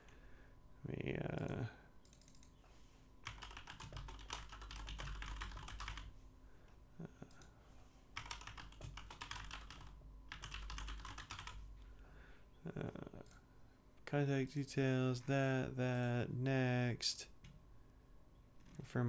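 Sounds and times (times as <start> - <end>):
typing on computer keyboard: 1.4 - 2.5, 3.2 - 6.1, 8.2 - 11.6.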